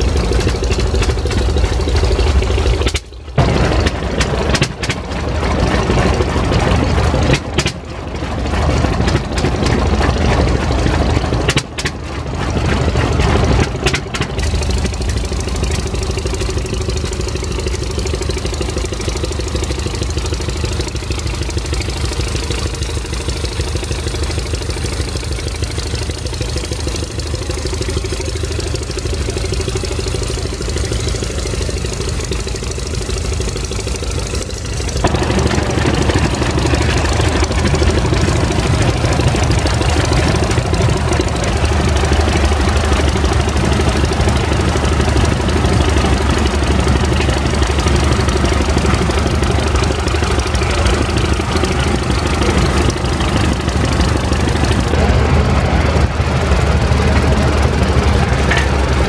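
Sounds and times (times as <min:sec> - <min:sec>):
tractor engine running: 0:00.0 - 0:59.0.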